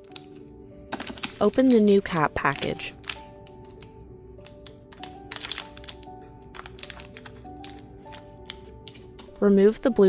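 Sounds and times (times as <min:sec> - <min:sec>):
soft background music: 0:00.0 - 0:10.0
package crinkling and clicking: 0:02.9 - 0:09.3.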